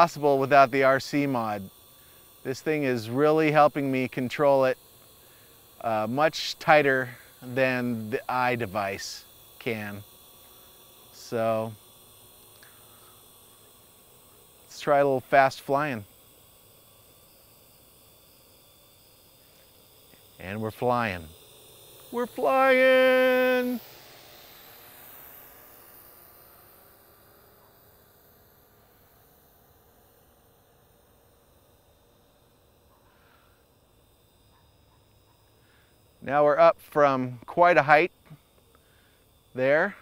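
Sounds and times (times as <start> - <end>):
man speaking: 0.0 - 1.7, 2.5 - 4.8, 5.8 - 10.0, 11.2 - 11.8, 14.7 - 16.1, 20.4 - 21.3, 22.1 - 23.8, 36.2 - 38.1, 39.6 - 40.0
faint steady hum and hiss: 0.0 - 40.0
thin high tones: 22.0 - 24.0.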